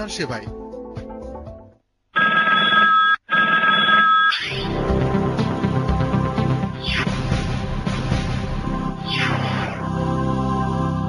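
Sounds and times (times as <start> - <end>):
music: 0.0 - 1.8, 4.5 - 11.0.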